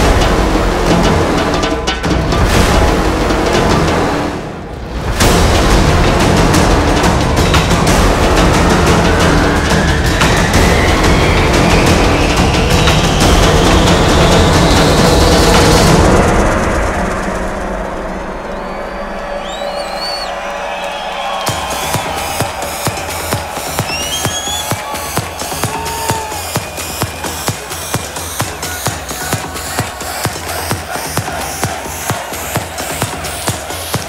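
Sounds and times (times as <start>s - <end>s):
electronic dance music: 0.0s - 34.0s
kick drum beat: 5.2s - 16.0s, 21.2s - 34.0s.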